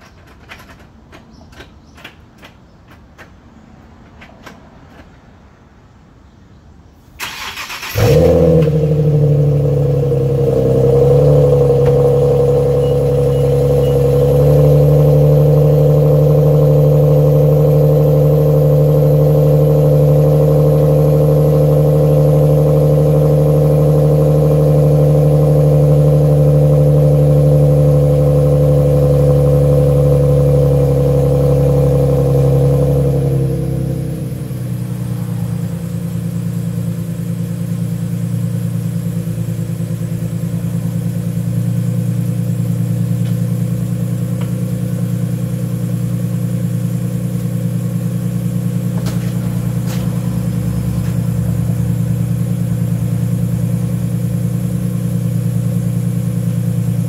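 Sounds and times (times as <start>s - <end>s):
car engine cranking: 0.0s - 5.1s, 7.2s - 57.0s
car engine idling: 7.2s - 57.0s.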